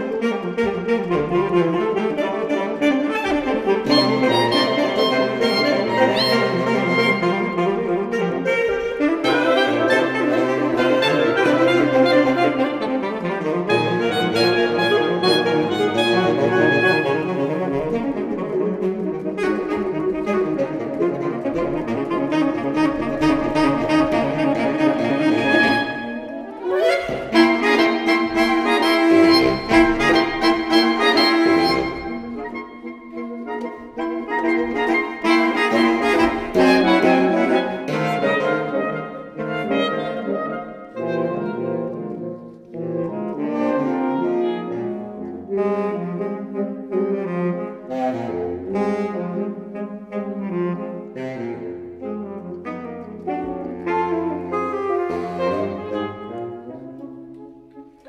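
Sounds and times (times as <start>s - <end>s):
saxophone quartet playing: 0.0s - 58.0s.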